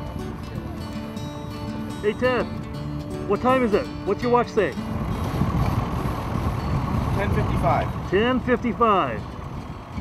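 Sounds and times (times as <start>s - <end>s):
boat engine low rumble: 0.0s - 10.0s.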